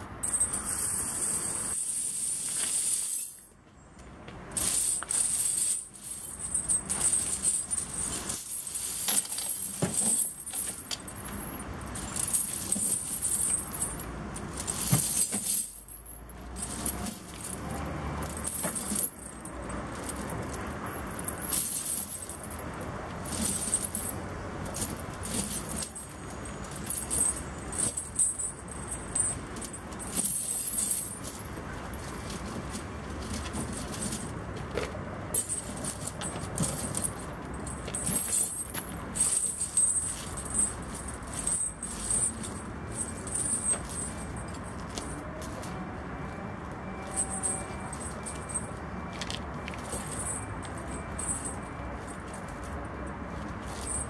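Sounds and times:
snow chains clinking and rattling: 0.2s - 3.5s, 4.5s - 45.8s, 47.0s - 52.8s, 53.4s - 54.0s.

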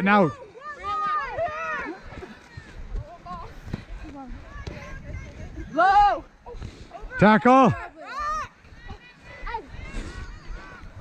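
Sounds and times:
running footsteps on grass: 0.0s - 11.0s
girls shouting: 0.2s - 3.6s, 4.3s - 11.0s
faint scattered voices: 0.3s - 11.0s.

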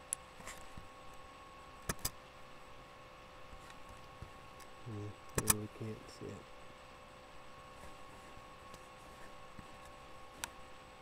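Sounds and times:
sharp clicks: 1.8s - 2.2s, 5.3s - 5.6s.

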